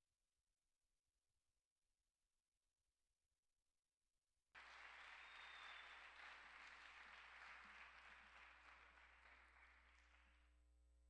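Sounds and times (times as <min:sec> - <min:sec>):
faint audience applause: 0:04.6 - 0:10.5.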